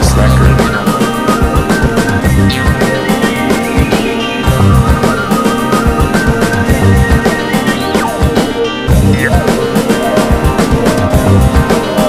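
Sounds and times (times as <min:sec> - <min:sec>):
bass line: 0:00.0 - 0:01.0, 0:01.8 - 0:03.2, 0:04.4 - 0:07.4, 0:08.9 - 0:11.8
hip hop beat: 0:00.0 - 0:12.0.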